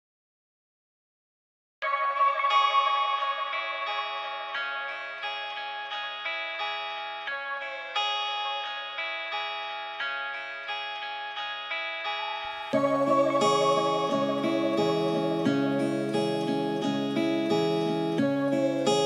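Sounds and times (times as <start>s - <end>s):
echoing guitar melody: 1.8s - 19.0s.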